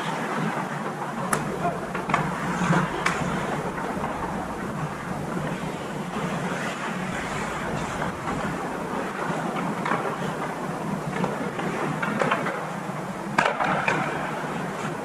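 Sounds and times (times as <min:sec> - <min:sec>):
steady low hum: 0:01.0 - 0:13.4
skates scraping on ice: 0:01.2 - 0:12.6.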